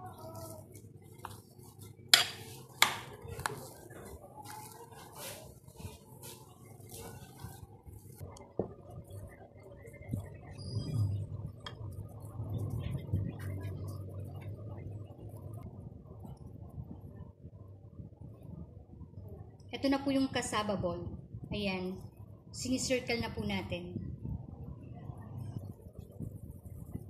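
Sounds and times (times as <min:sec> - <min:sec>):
soft handling of mash: 0:00.0 - 0:10.6.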